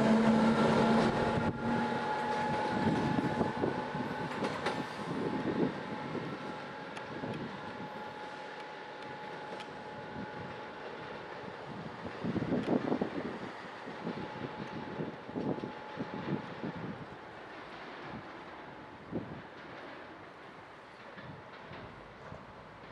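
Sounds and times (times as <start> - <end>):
steady train whine: 0.0 - 22.9
train wheels clacking over rail joints: 0.0 - 22.9.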